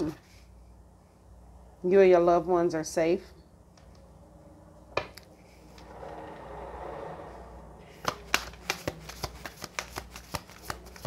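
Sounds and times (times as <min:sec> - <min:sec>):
cards shuffling: 0:07.9 - 0:11.0.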